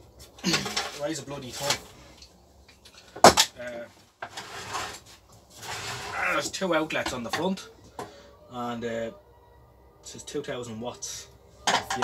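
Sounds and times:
heavy box scraping on wooden bench: 4.2s - 6.4s.

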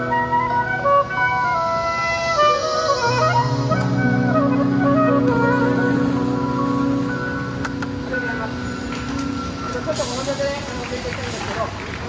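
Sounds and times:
traffic hum: 0.0s - 12.0s
people's voices: 7.6s - 12.0s.

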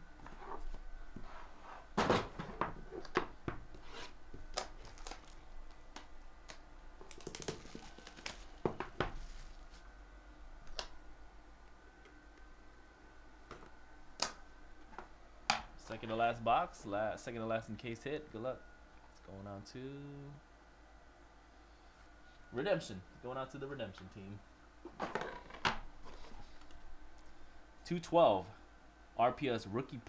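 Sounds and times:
plastic wrapping crinkling and tearing: 4.5s - 9.8s.

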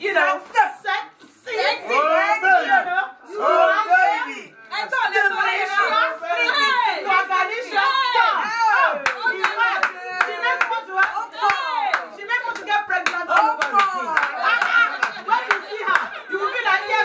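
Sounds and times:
women cheering and shouting: 1.5s - 17.0s
hand clapping: 9.0s - 16.2s.

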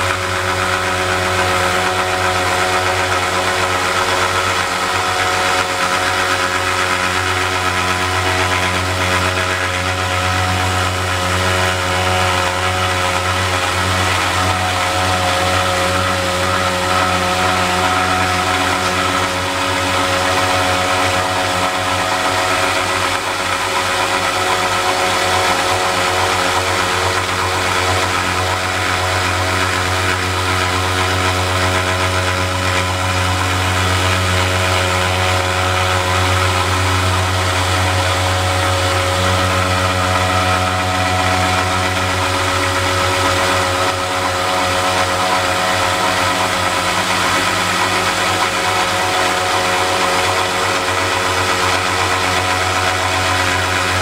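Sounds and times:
belt sander motor hum: 0.0s - 54.0s.

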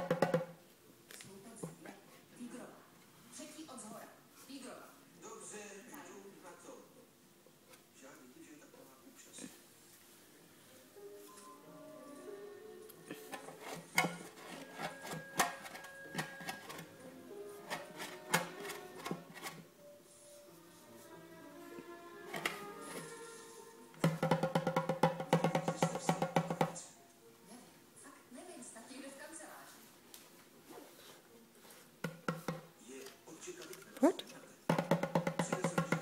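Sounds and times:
baby slapping hand drum: 0.0s - 0.6s, 17.7s - 19.6s, 24.0s - 26.8s, 32.0s - 32.7s, 34.7s - 36.0s.

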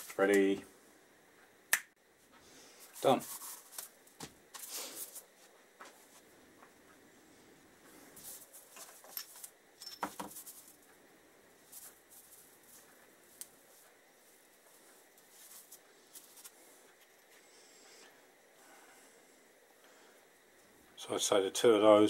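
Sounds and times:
scouring pads rubbing: 3.0s - 3.9s, 14.6s - 16.6s.

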